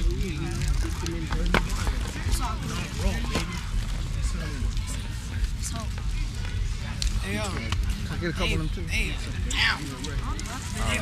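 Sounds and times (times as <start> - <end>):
chatter of young voices: 0.0 - 11.0.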